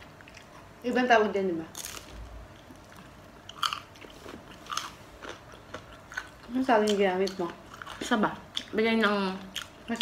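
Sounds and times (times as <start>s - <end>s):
crunching and chewing: 0.0s - 0.7s, 1.7s - 8.8s, 9.4s - 10.0s.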